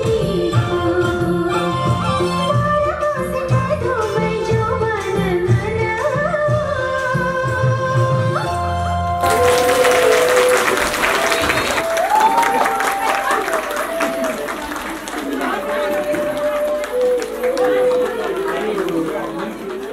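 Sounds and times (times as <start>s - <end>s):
audience applauding: 9.2s - 19.9s.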